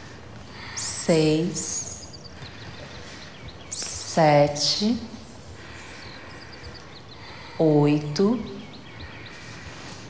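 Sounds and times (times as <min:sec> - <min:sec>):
background hiss: 0:00.0 - 0:10.0.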